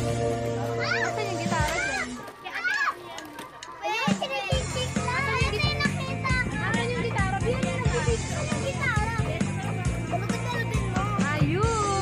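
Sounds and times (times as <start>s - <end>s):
children calling out and chattering: 0.1s - 12.0s
music with steady bass beat: 4.6s - 12.0s.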